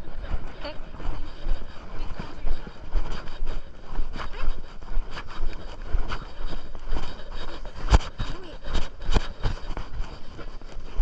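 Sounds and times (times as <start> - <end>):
footsteps: 0.0 - 11.0
leash and clothing rustling: 0.0 - 11.0.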